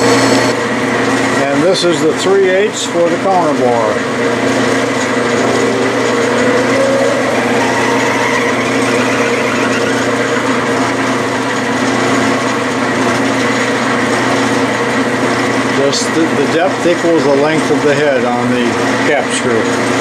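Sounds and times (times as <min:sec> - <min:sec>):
metal lathe motor hum and whine: 0:03.0 - 0:15.7.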